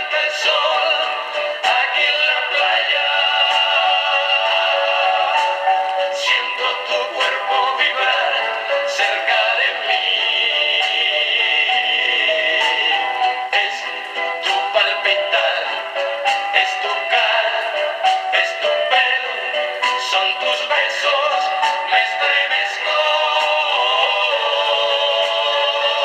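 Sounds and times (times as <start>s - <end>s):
record player playing song: 0.0s - 26.0s.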